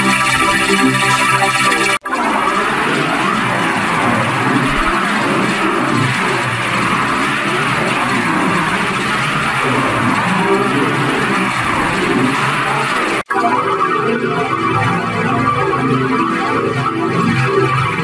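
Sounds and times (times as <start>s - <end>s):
warbling pitch-shifted cartoon audio: 0.0s - 18.0s.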